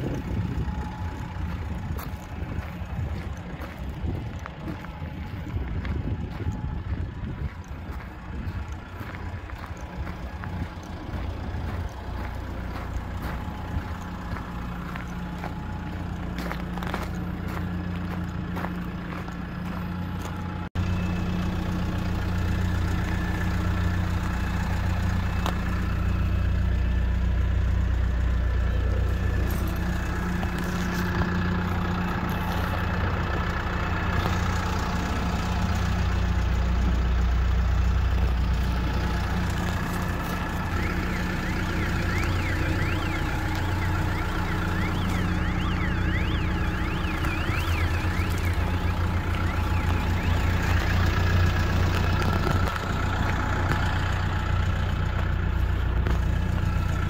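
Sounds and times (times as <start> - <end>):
truck engine idling: 0.0 - 57.0
warbling alarm-like tone: 38.9 - 52.0.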